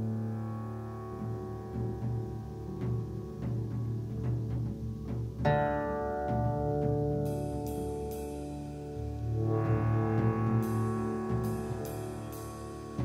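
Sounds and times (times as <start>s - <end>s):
bass line: 0.0s - 13.0s
light ticking percussion: 1.0s - 13.0s.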